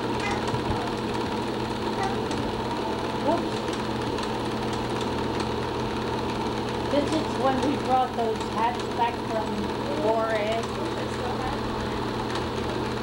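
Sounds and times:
electrical hum: 0:00.0 - 0:13.0
film projector whirring and clatter: 0:00.0 - 0:13.0.

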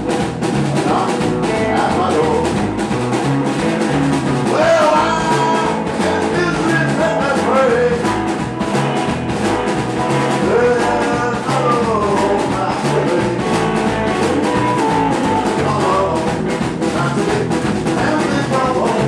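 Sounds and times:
drums: 0:00.0 - 0:19.0
electric guitar: 0:00.0 - 0:19.0
upright bass: 0:00.0 - 0:19.0
lead vocal singing: 0:00.8 - 0:02.6, 0:04.4 - 0:08.3, 0:10.2 - 0:19.0.

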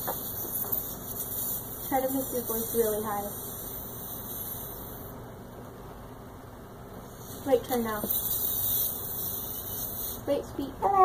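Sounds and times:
helium hissing from balloon: 0:00.0 - 0:05.2, 0:07.0 - 0:10.3.

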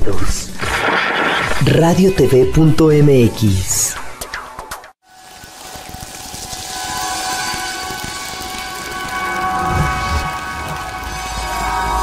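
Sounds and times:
hissing wash: 0:05.1 - 0:12.0
held synth chord: 0:06.6 - 0:12.0.

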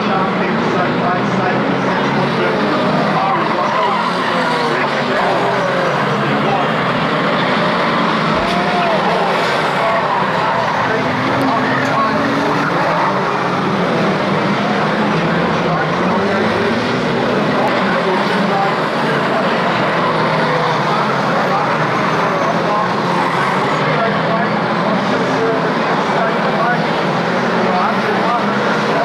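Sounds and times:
racing car engines revving: 0:00.0 - 0:29.0.

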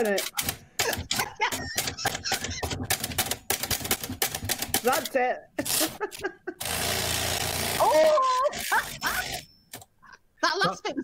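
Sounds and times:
typewriter key strikes: 0:00.0 - 0:05.1.

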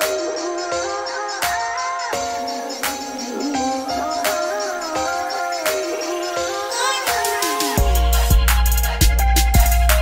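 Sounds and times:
sliding synthesizer melody: 0:02.1 - 0:10.0.

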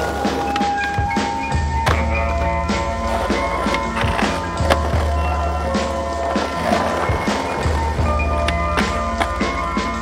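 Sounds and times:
music track: 0:00.0 - 0:10.0
skateboard clack: 0:00.0 - 0:10.0
skateboard scraping ledge: 0:00.0 - 0:10.0.

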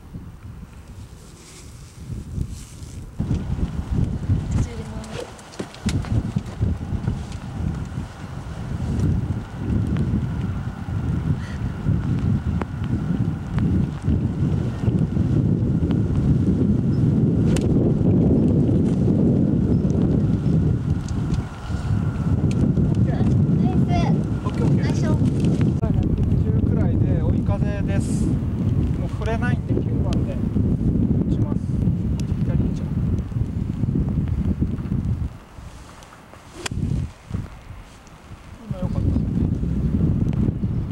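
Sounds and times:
wind buffeting microphone: 0:00.0 - 0:40.9
golf club striking ball: 0:36.6 - 0:36.8.

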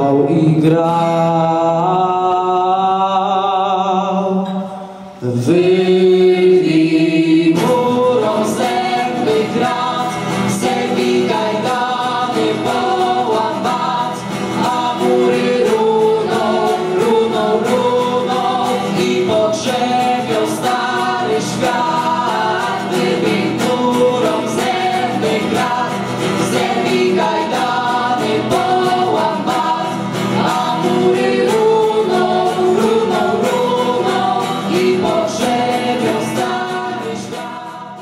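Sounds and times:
strummed acoustic guitars: 0:00.0 - 0:38.0
vocal ensemble singing in harmony: 0:00.0 - 0:38.0.

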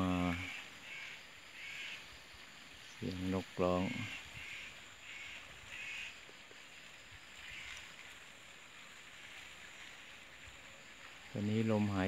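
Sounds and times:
faint distant bird calls: 0:00.0 - 0:12.0
steady background hiss: 0:00.0 - 0:12.0.

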